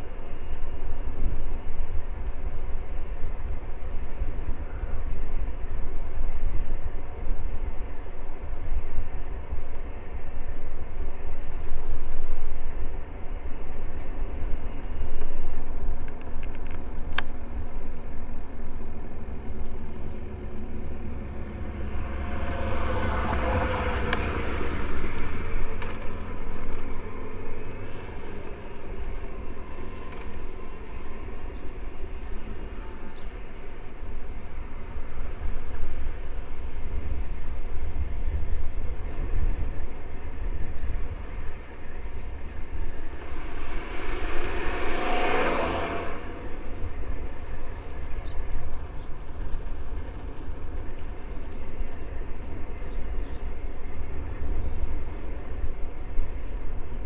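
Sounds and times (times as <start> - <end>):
wind rumble on microphone: 0.0 - 57.0
motor vehicle passing by: 20.8 - 28.3, 42.9 - 48.2.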